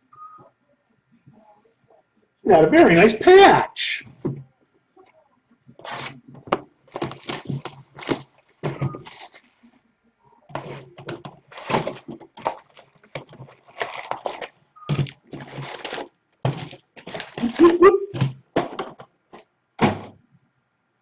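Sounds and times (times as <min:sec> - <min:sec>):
card rustling: 0:06.9 - 0:09.6, 0:10.5 - 0:18.4.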